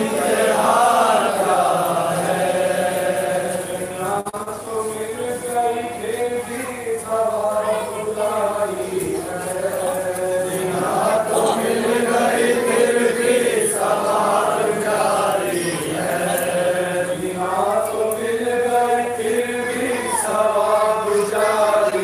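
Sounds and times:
men chanting a lament: 0.0 - 22.0.

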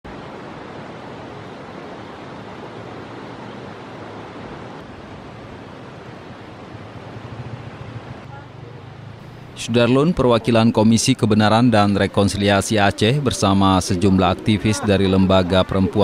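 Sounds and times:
rushing outdoor noise: 0.0 - 16.0.

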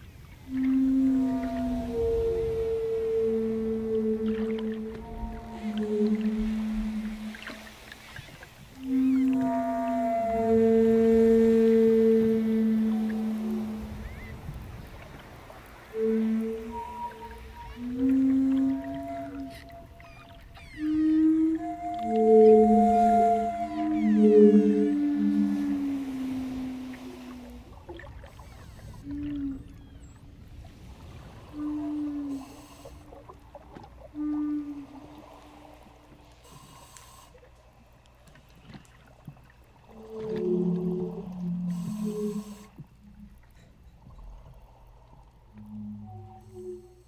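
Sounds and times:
wooden flute playing low notes: 0.2 - 37.4, 38.3 - 47.0.

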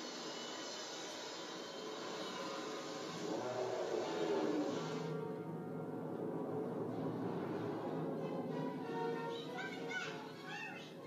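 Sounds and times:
faint music: 0.0 - 11.0
steady rushing noise: 2.8 - 11.0.

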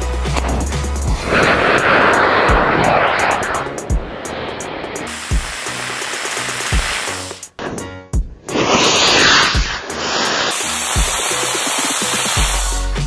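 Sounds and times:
background music with slow beat: 0.0 - 2.8, 3.8 - 13.0
rocket motor hissing rush: 1.0 - 7.5, 8.5 - 13.0.

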